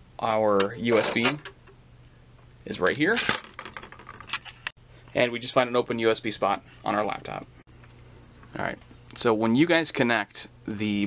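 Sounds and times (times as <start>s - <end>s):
cable clicking and rattling: 2.8s - 4.7s.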